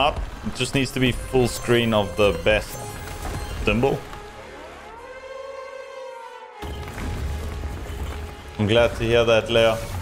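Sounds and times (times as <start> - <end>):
low rumbling music: 0.2 - 10.0.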